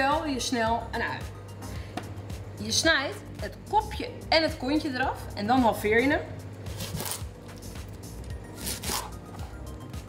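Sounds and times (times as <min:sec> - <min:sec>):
background music with bass: 0:00.0 - 0:10.0.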